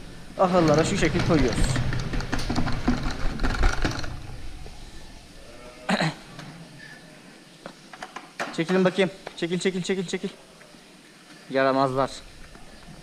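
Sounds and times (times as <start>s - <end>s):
handling noise: 0.4s - 4.8s.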